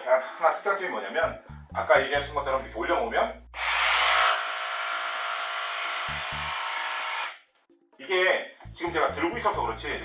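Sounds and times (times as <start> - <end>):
cordless jigsaw whirring: 3.6 - 7.4.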